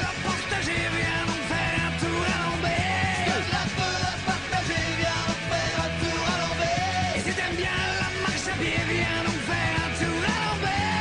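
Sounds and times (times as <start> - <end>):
song with singer and band: 0.0 - 11.0.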